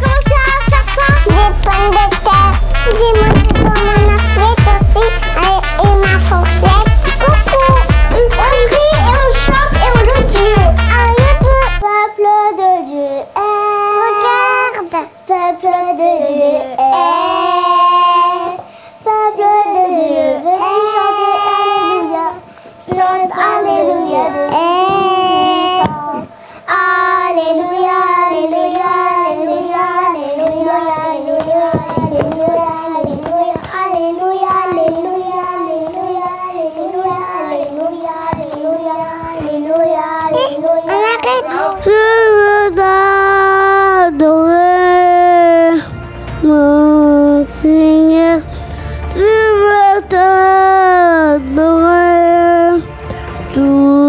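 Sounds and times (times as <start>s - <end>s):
child singing: 0.0s - 48.4s, 49.1s - 52.9s, 53.5s - 54.0s.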